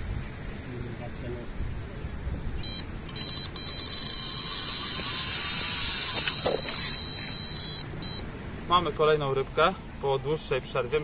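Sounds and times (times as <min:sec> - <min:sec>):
bite alarm beeping: 0:02.6 - 0:08.3.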